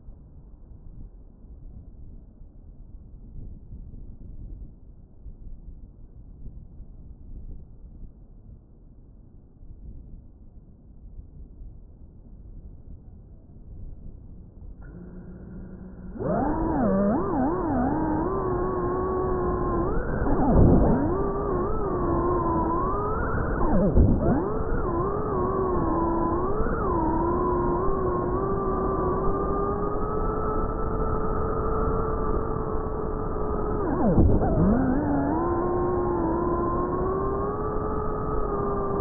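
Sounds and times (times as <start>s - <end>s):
drone motors whining: 14.8s - 39.0s.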